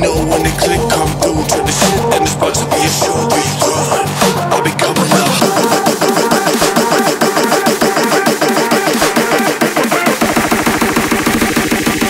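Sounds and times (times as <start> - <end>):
low bass: 0.0 - 5.4
synth stabs and drum hits: 0.0 - 12.0.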